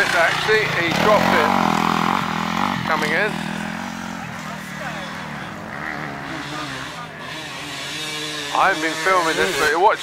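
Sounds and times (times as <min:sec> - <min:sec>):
people talking: 0:00.0 - 0:01.6, 0:02.8 - 0:03.4, 0:04.0 - 0:07.6, 0:08.6 - 0:10.0
dirt bike engine running: 0:00.0 - 0:10.0.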